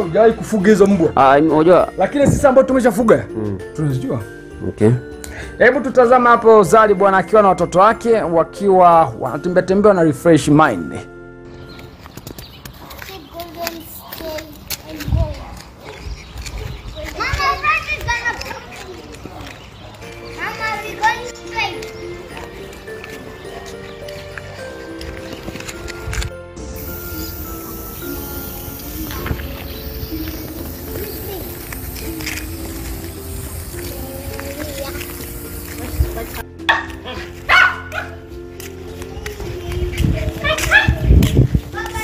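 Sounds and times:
background music: 0.0s - 12.2s, 19.4s - 42.0s
child calling out: 30.9s - 32.8s, 33.8s - 35.2s
small dog barking: 36.7s - 38.2s, 40.5s - 41.1s.

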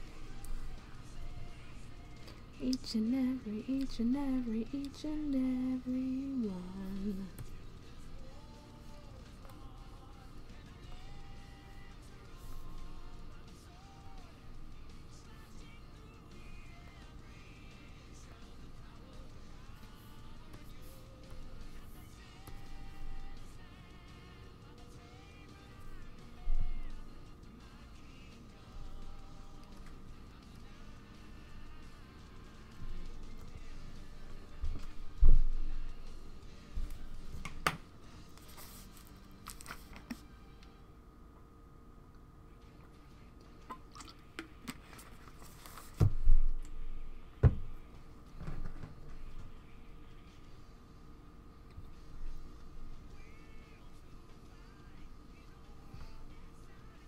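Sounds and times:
soft background music: 0.0s - 57.0s.

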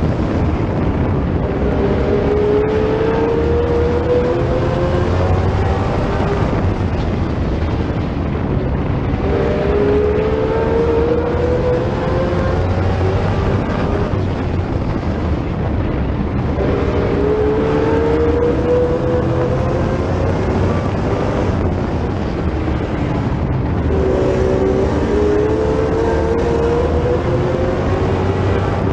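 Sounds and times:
race car engine accelerating: 0.0s - 28.9s
second race car engine: 0.0s - 28.9s.

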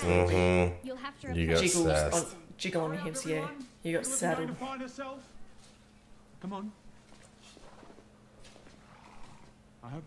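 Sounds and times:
man talking: 0.0s - 2.3s.

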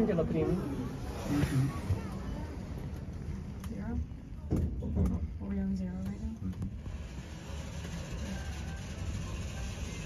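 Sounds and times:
people talking: 0.0s - 4.7s.

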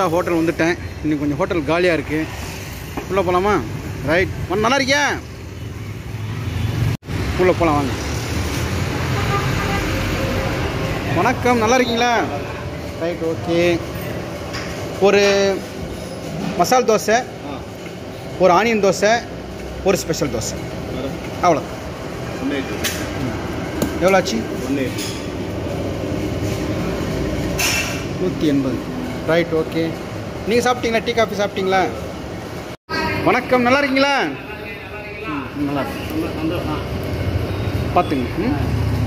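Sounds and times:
street traffic rumble: 0.0s - 39.0s.

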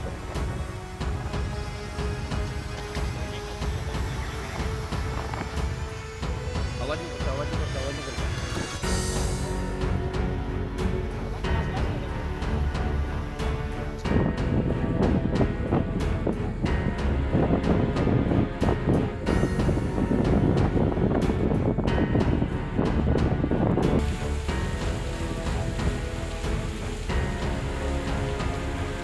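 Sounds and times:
background music: 0.0s - 29.0s
wind buffeting microphone: 0.0s - 29.0s.

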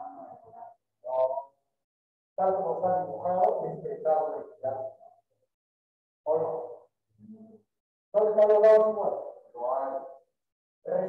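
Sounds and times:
person speaking: 2.4s - 4.9s.

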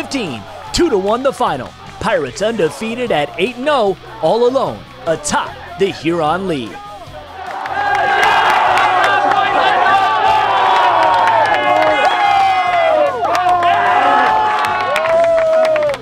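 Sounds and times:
boys shouting and cheering: 0.0s - 16.0s
high-five claps: 10.3s - 13.7s, 14.6s - 16.0s.

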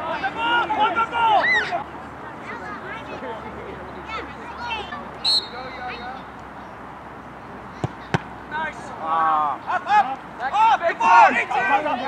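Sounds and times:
referee's whistle blast: 5.2s - 6.2s
ball being kicked: 7.8s - 8.3s.

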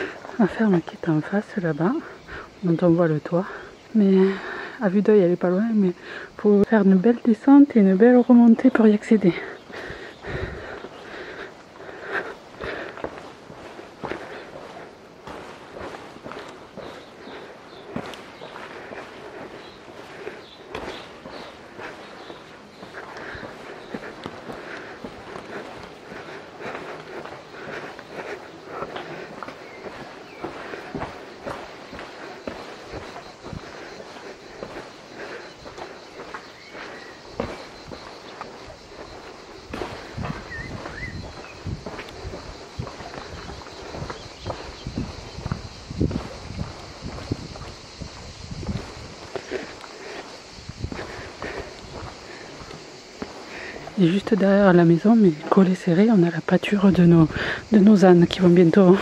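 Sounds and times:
footsteps on pavement: 0.0s - 4.8s, 7.5s - 59.0s.

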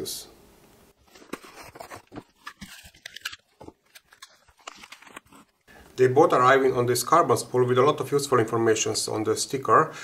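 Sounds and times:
plastic bags crinkling: 1.0s - 5.7s.

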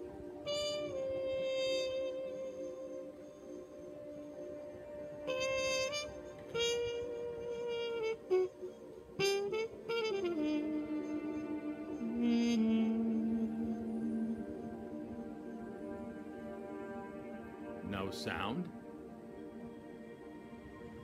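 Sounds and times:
steady sustained drone: 0.0s - 0.5s, 10.6s - 21.0s
brass horn playing long notes: 0.0s - 21.0s.

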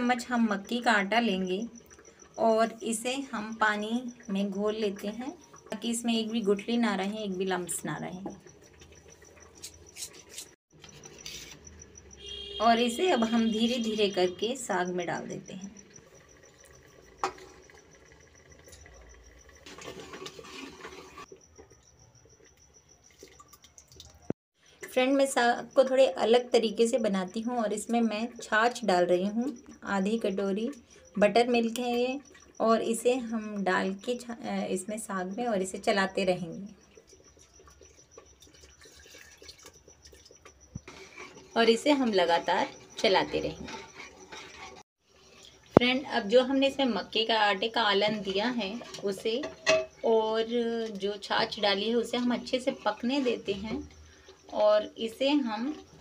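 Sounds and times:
liquid dripping and splashing: 23.0s - 24.4s, 36.8s - 40.9s
spoon stirring in steel bowl: 36.9s - 45.6s.

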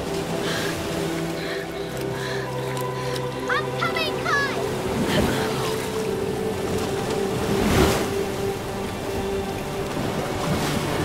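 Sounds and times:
held musical drone: 0.0s - 11.0s
sea water splashing and surging: 0.0s - 11.0s.

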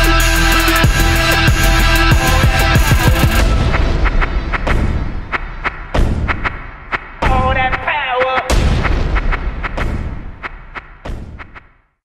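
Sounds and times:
low rumble: 0.0s - 7.0s
heavy boom: 0.8s - 7.7s, 8.5s - 11.6s.

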